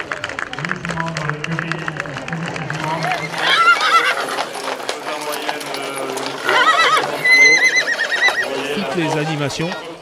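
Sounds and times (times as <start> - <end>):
hooves clattering on asphalt: 0.0 - 10.0
horse whinnies: 2.8 - 8.8.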